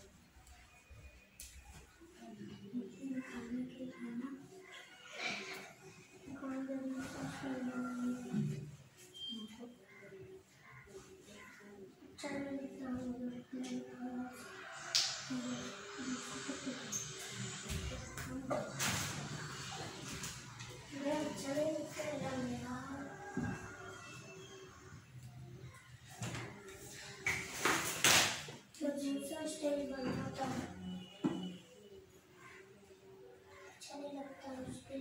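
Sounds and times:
children talking and playing: 0.0 - 35.0.

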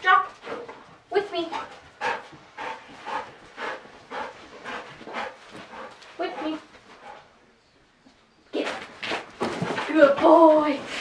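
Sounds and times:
dog panting hard: 0.3 - 7.4.

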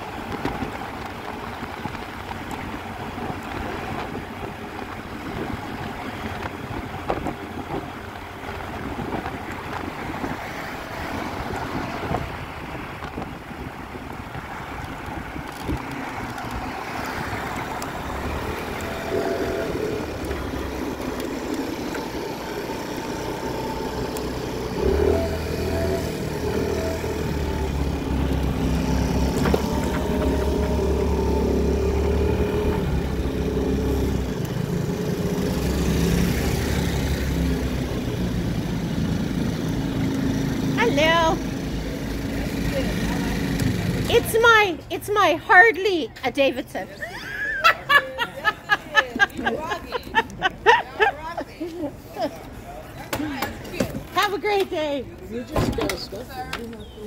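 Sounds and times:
scooter engines running: 0.0 - 57.0
wind on microphone: 0.1 - 21.6.

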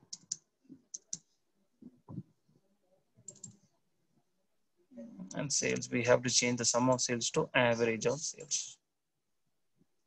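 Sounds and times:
keyboard keys clicking: 0.0 - 1.2.

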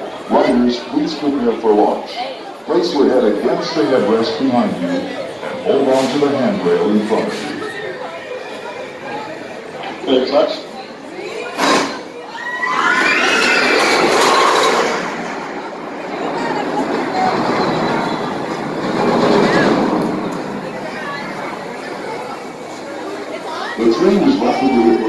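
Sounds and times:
roller coaster train on track: 0.0 - 25.0
riders screaming: 12.3 - 14.9.

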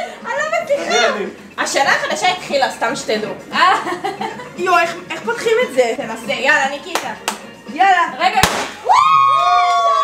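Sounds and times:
confetti cannon pop: 8.4 - 8.9.

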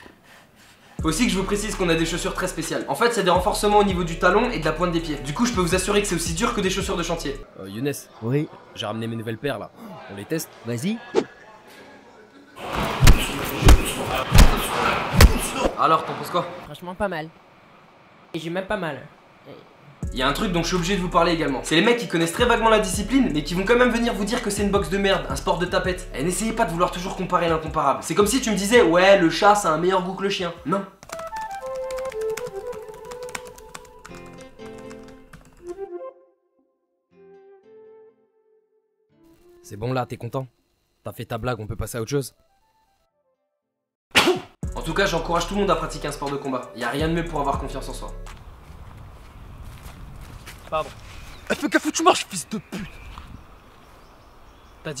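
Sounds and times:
light background music: 1.0 - 7.5, 20.0 - 36.2, 44.6 - 48.6
heavy blows thudding on body: 13.0 - 15.6
fast typing on keyboard: 30.9 - 35.8.

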